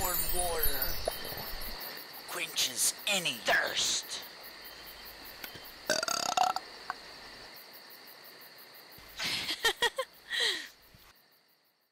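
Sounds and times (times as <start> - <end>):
faint crickets chirping: 0.0 - 11.9
man burping: 5.9 - 6.6.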